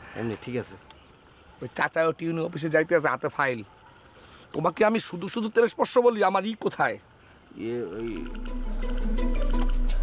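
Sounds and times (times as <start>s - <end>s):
man speaking: 7.6s - 8.4s.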